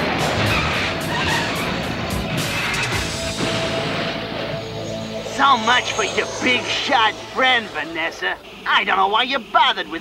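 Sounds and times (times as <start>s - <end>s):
dramatic background music: 0.0s - 9.5s.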